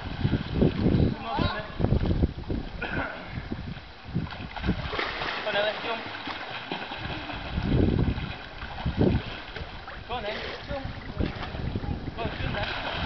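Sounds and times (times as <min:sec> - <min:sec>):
water splashing and lapping: 0:00.0 - 0:13.0
wind buffeting microphone: 0:00.0 - 0:13.0
person coughing: 0:02.8 - 0:03.4.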